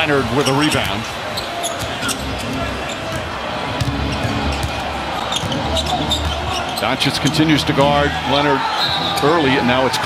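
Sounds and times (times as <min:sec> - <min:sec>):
sneakers squeaking on floor: 0:01.4 - 0:06.8.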